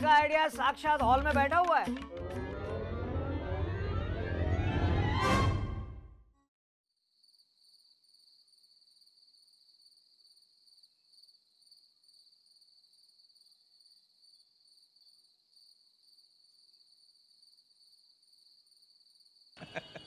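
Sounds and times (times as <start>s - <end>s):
music: 0.0s - 6.5s
crickets chirping: 7.0s - 20.0s.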